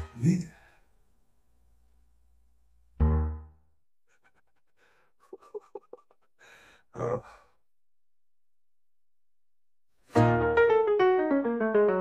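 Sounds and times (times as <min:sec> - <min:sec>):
person breathing and sighing: 0:04.1 - 0:07.6.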